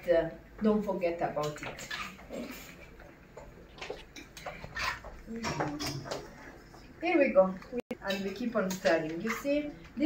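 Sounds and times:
utensil scraping and knocking pot: 8.0 - 10.0
utensil stirring pasta in pot: 8.0 - 10.0.

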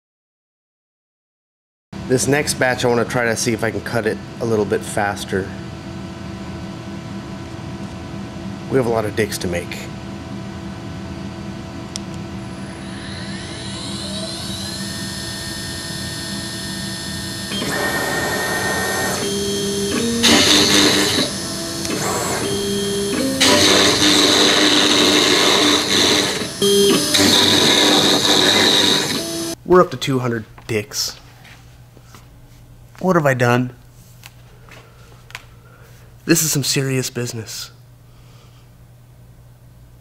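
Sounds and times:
drive motors whining: 11.9 - 29.6
router spindle whining: 12.2 - 29.6
router cutting wood: 12.4 - 29.6.

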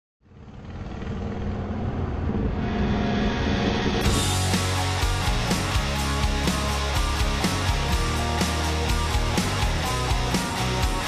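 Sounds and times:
motorcycle engine rumbling: 0.2 - 8.4.

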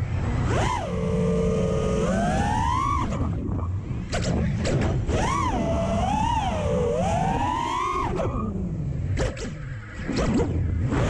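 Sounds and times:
drone motors whining: 0.0 - 11.0
low wind rumble: 0.0 - 11.0.

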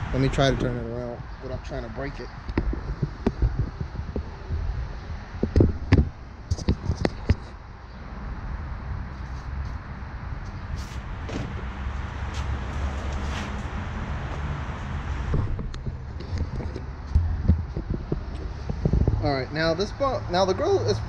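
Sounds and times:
steady low rumble: 0.0 - 20.3.

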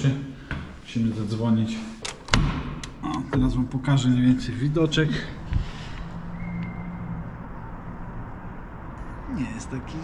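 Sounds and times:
distant road traffic hum: 0.0 - 10.0.

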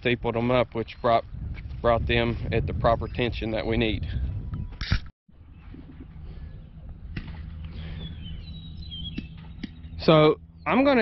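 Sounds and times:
low steady rumble: 5.3 - 11.0
faint high bird chirps: 7.6 - 10.9.

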